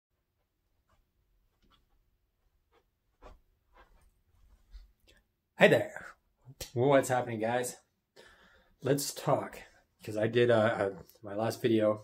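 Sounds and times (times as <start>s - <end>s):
faint scuffs of person moving: 0.4s - 5.2s.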